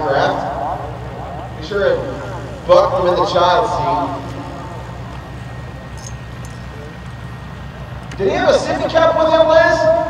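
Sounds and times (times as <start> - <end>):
airplane engine idling: 0.0 - 10.0.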